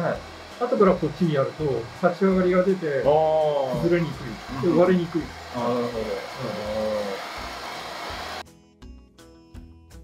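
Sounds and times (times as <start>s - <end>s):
hair dryer blowing: 0.0s - 8.4s
background music: 0.0s - 10.0s.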